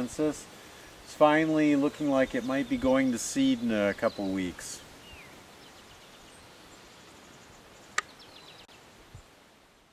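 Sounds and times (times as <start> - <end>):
steady background hiss: 0.0 - 9.9.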